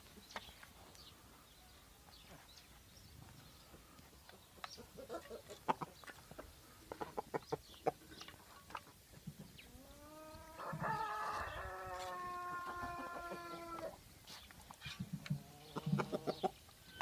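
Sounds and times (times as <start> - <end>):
chickens clucking: 3.2 - 17.0
chicken long drawn-out call: 9.8 - 14.0.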